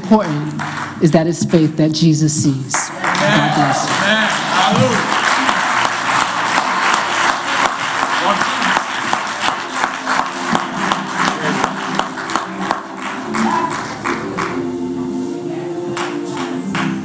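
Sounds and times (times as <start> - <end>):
congregation clapping: 0.0 - 1.1, 2.7 - 17.0
people calling out: 3.0 - 5.2, 13.3 - 14.0.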